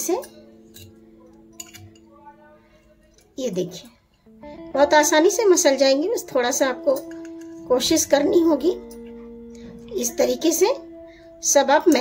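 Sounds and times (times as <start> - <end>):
fork clinking on ceramic plate: 0.2 - 2.1.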